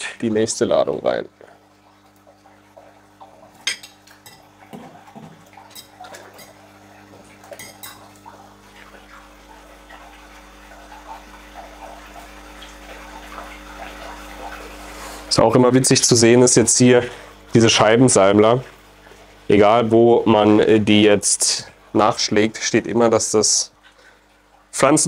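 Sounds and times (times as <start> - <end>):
steady low hum: 0.0 - 25.0
fish splashing at water surface: 1.4 - 15.3.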